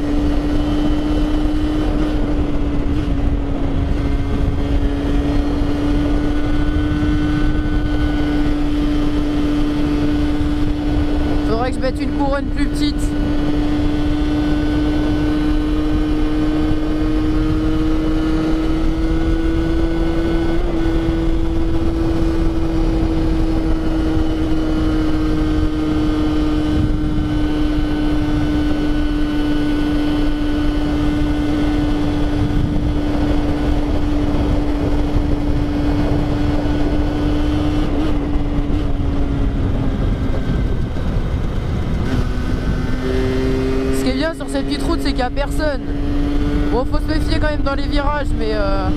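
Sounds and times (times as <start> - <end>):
two-stroke engine at high revs: 0.0 - 48.9
wind noise on microphone: 0.0 - 48.9.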